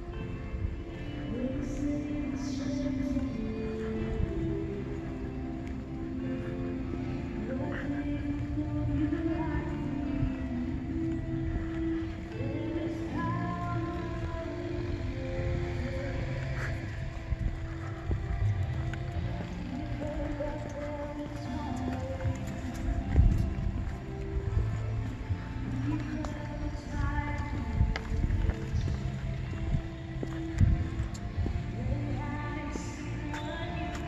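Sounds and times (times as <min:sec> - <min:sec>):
low rumble: 0:10.2 - 0:34.0.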